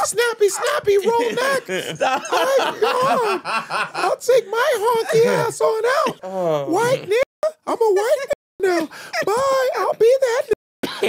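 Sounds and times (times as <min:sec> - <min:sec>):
man chuckling: 0:00.0 - 0:05.5.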